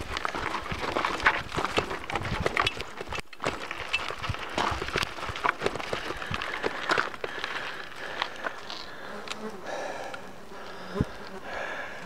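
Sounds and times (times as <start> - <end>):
fly buzzing: 8.6 - 12.0.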